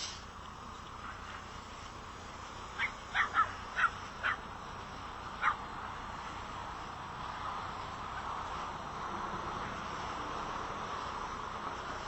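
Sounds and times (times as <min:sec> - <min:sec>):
high-pitched animal yelps: 0:02.8 - 0:04.4, 0:05.4 - 0:05.6.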